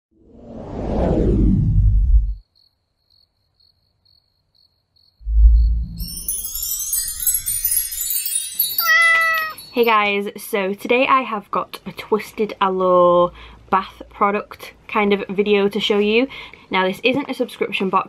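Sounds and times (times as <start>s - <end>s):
whoosh: 0.2s - 2.4s, 5.2s - 6.5s
low boom: 5.2s - 6.2s
high glittering shimmer: 5.3s - 10.1s
cat meow: 8.8s - 9.7s.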